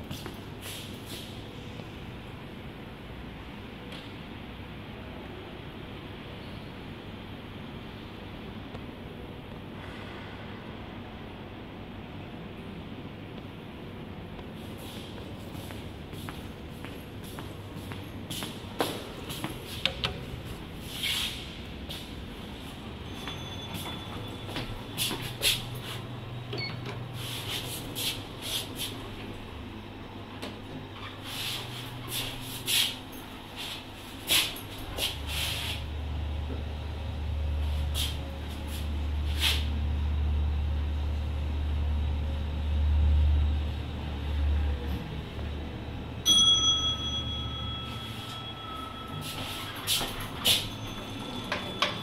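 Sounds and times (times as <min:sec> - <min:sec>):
lift running hum: 0:00.0 - 0:52.0
bright chime: 0:23.1 - 0:24.6, 0:46.2 - 0:52.0.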